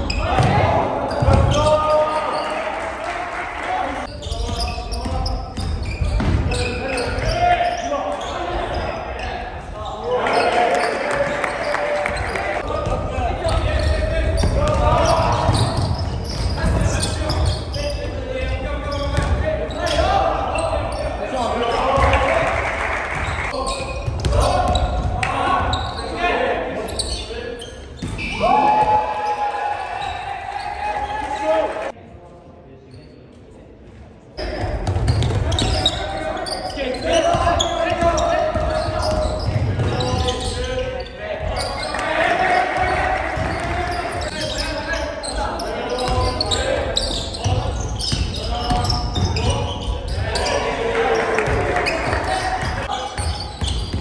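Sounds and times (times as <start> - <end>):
players shouting: 0.0 - 4.1, 9.9 - 18.0, 28.2 - 32.0, 35.4 - 53.4.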